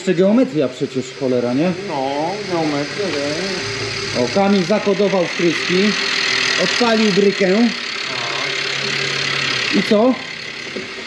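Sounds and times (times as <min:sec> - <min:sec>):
petrol engine idling: 0:00.0 - 0:11.0.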